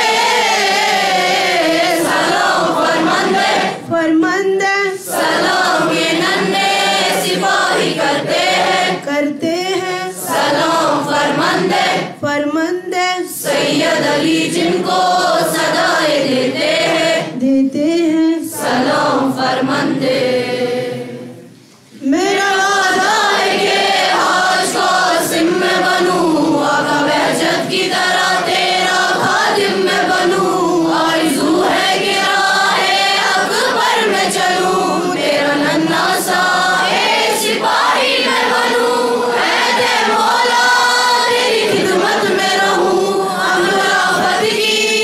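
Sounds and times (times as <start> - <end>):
girls chanting in unison: 0.0 - 3.9, 5.0 - 9.1, 9.8 - 12.3, 13.4 - 17.4, 22.4 - 45.0.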